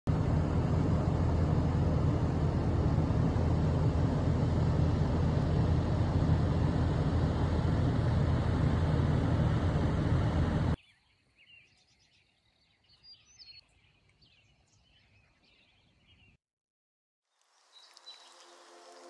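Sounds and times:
low rumbling outdoor noise: 0.1s - 10.8s.

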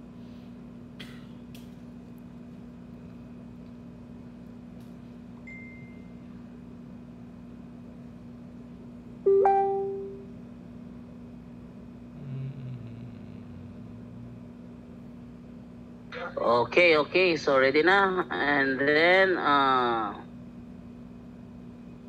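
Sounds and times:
low electrical hum: 0.0s - 22.0s
plucked musical note: 9.3s - 10.2s.

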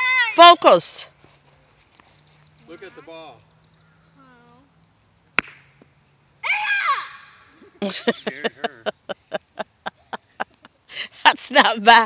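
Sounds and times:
croquet mallet hitting ball: 5.4s - 5.6s.

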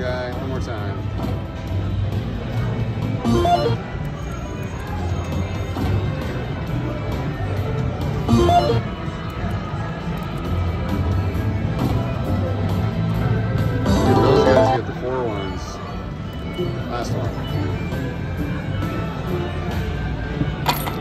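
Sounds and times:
slot machine game music: 3.2s - 3.9s, 8.2s - 9.0s, 13.8s - 15.2s
slot machine reels spinning: 3.3s - 3.8s, 13.9s - 14.8s.

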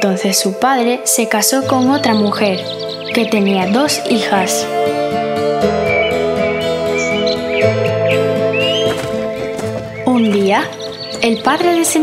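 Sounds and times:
background music with sustained chords: 0.0s - 12.0s.

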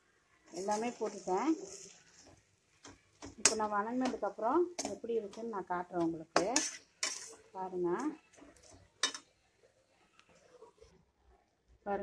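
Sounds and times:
metal spatula scraping a pan: 0.5s - 4.2s, 4.8s - 9.3s.

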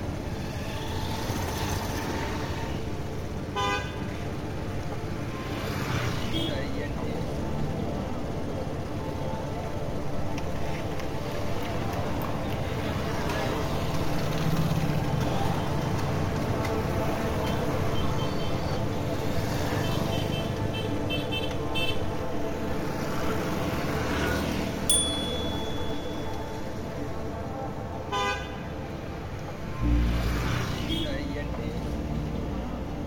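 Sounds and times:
street traffic: 0.0s - 33.0s.

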